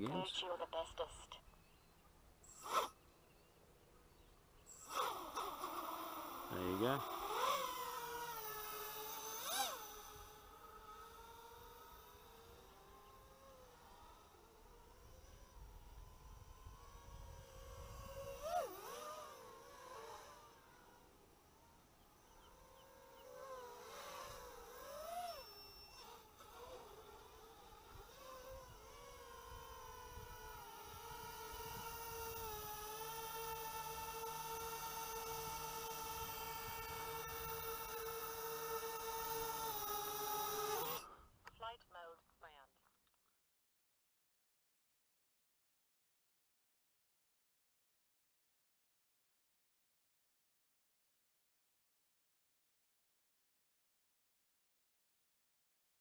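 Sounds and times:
quadcopter motors whining: 1.5s - 41.3s.

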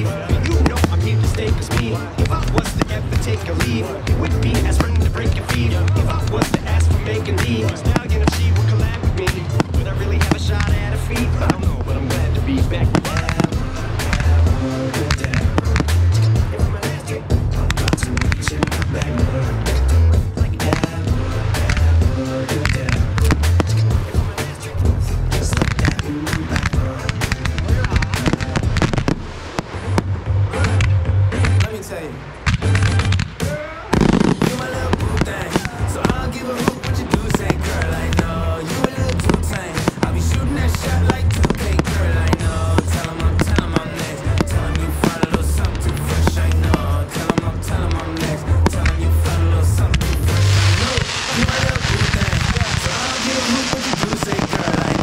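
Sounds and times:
fireworks bangs and crackling: 0.0s - 55.0s
pop song with heavy bass: 0.0s - 55.0s.

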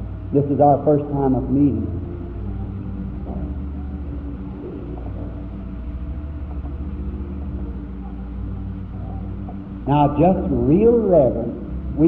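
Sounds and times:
recording hum and hiss: 0.0s - 12.0s
soft slow background music: 0.0s - 12.0s.

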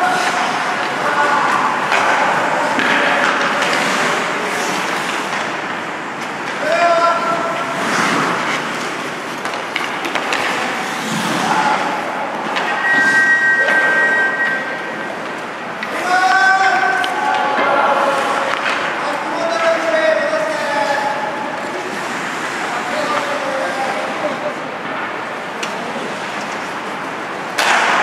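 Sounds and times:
players shouting: 0.0s - 3.8s, 15.8s - 21.7s
hockey stick hitting puck: 0.0s - 12.8s, 15.8s - 21.0s, 27.5s - 28.0s
skate blades scraping ice: 1.8s - 5.7s, 6.6s - 13.2s
steady high tone: 12.6s - 15.4s.

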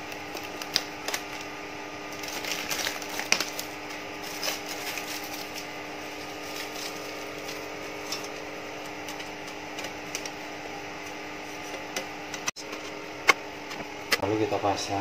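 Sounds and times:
steady hum: 0.0s - 15.0s.

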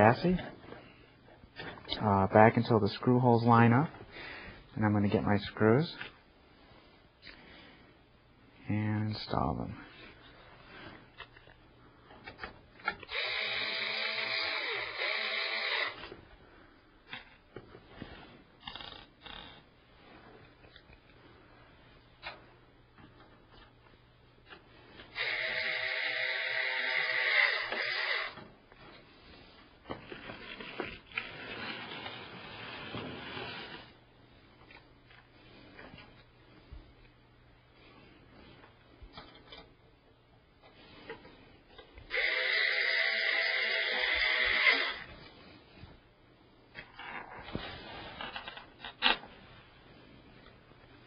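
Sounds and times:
power screwdriver whine: 13.0s - 16.1s, 25.2s - 28.4s, 42.1s - 45.1s.

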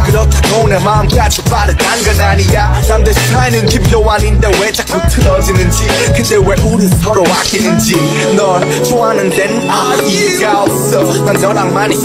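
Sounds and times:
rapping over a hip hop beat: 0.0s - 12.0s.

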